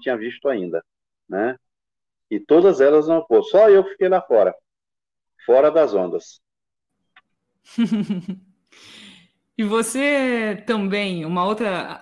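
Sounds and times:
person laughing: 7.7 - 8.4
breathy exhale: 8.7 - 9.4.

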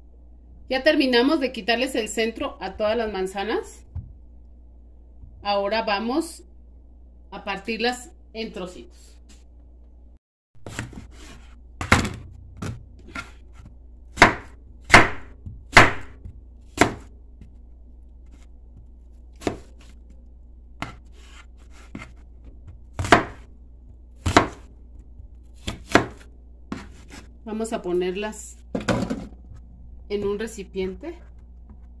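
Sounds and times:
knife chopping on plastic board: 10.6 - 17.5, 19.4 - 19.9, 20.8 - 23.5, 24.2 - 24.7, 25.6 - 27.3.

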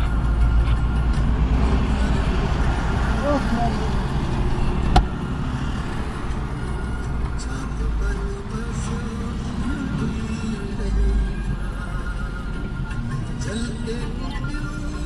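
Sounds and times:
car road and engine rumble: 0.0 - 15.0.

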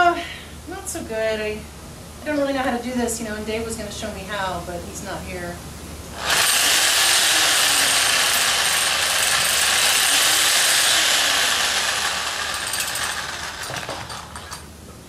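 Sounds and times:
reciprocating saw running: 6.2 - 14.6.

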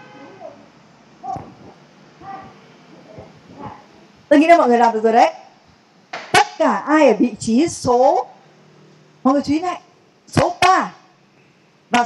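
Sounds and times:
people calling out: 0.0 - 4.1.

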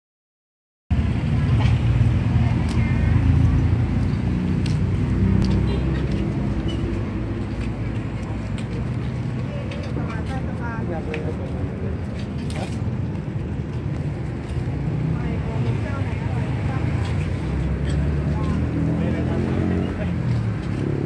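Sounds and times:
motor traffic rumble: 0.9 - 21.0
people's voices: 5.4 - 21.0.

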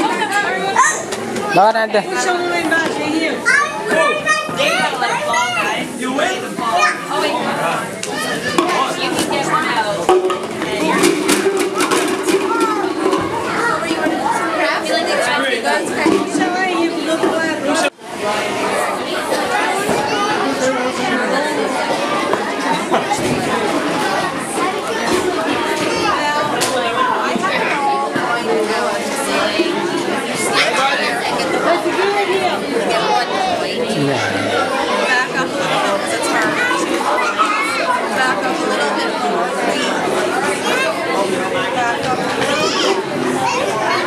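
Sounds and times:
children chattering and calling out: 0.0 - 44.0.

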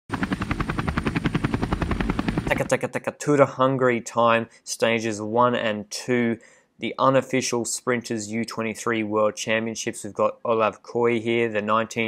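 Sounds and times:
helicopter rotor chop: 0.1 - 3.1.

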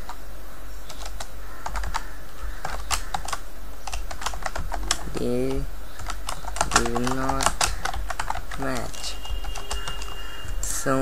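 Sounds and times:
steady low hum: 0.0 - 11.0
keyboard key clicks: 2.6 - 10.2.

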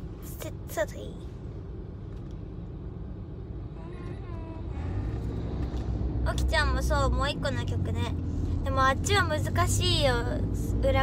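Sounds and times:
car engine rumble from inside cabin: 0.0 - 11.0.

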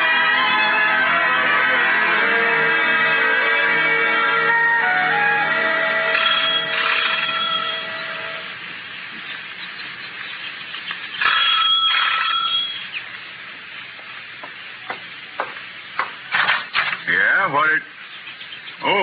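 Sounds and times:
radio drama music bridge: 0.0 - 19.0
loud burst with ringing tone: 5.7 - 8.6, 11.1 - 13.0
sharp knocks: 14.4 - 17.0.

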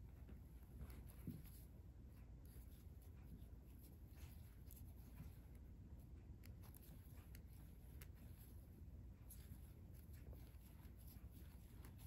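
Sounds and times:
thread rustling over crochet hook: 0.0 - 12.0.

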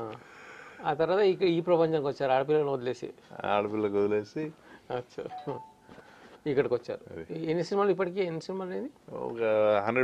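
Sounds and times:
person speaking: 4.9 - 5.9
electronic two-note chime: 5.3 - 5.8.

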